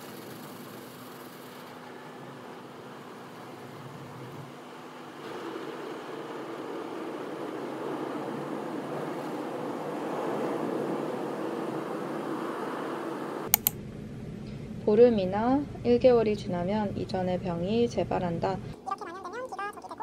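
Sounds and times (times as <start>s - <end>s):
car wash water spray and blowers: 0.0s - 13.5s
sharp clicks: 13.5s - 13.8s.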